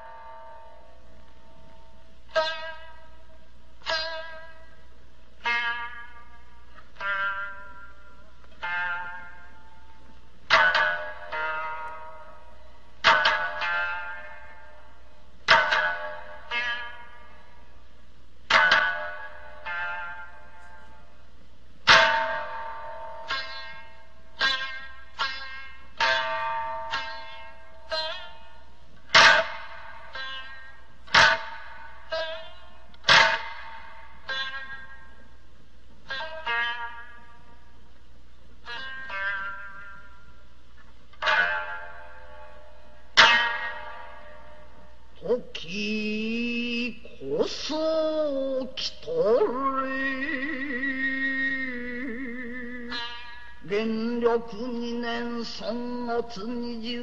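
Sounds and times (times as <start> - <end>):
lute strings struck with plectrum: 5.4 - 17.5, 18.4 - 21.1, 21.8 - 35.2, 40.8 - 45.1.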